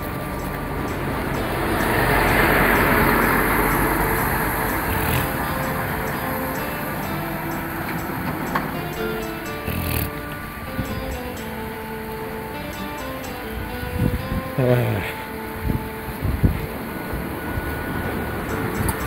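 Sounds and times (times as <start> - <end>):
background music held notes: 0.0 - 19.0
vehicle passing by: 0.0 - 19.0.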